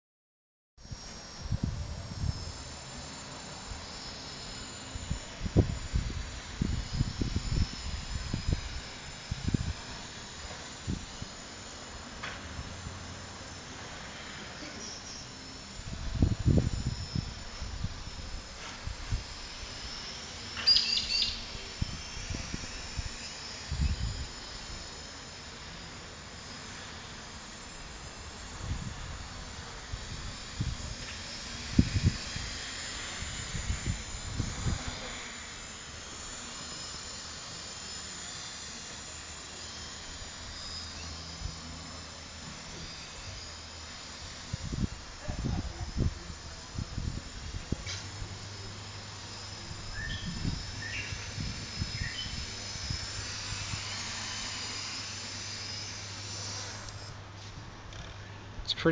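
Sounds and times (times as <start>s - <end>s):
drone buzzing whine: 0.8s - 58.9s.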